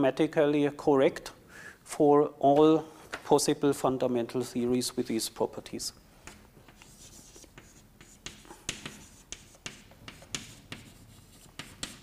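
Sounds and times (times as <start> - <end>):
chalk tapping and scraping: 6.2 - 12.0.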